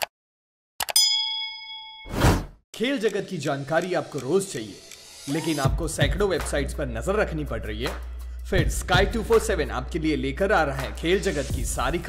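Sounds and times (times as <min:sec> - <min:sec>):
bright chime ding: 0:01.0 - 0:02.1.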